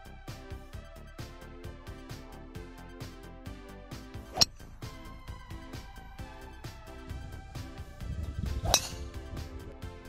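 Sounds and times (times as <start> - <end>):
background music with beat: 0.0 - 10.0
golf club striking ball: 4.3 - 4.8, 8.6 - 9.3.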